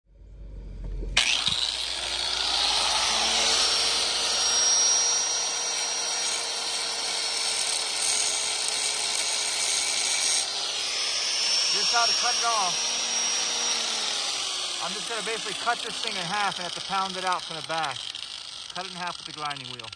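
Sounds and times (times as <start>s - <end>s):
angle grinder cutting steel: 1.2s - 19.9s.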